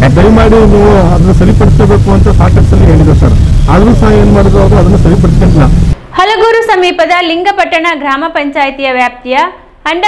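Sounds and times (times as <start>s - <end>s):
loud low rumble: 0.0s - 6.0s
man talking: 0.0s - 6.0s
woman talking: 6.1s - 10.0s.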